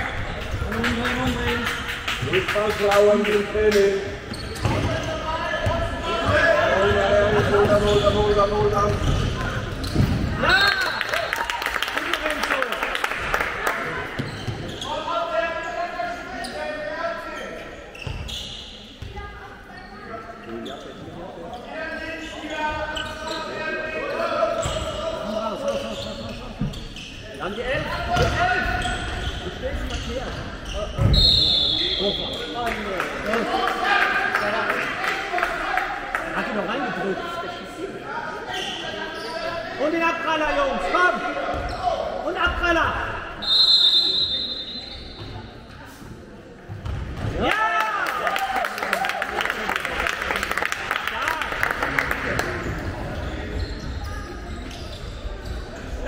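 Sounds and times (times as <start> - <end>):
referee's whistle: 31.0 - 32.5, 43.4 - 45.3.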